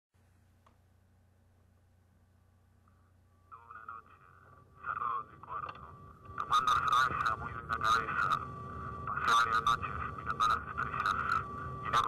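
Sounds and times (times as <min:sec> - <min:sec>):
faint electrical hum: 0:00.2 - 0:12.0
person speaking: 0:03.5 - 0:12.0.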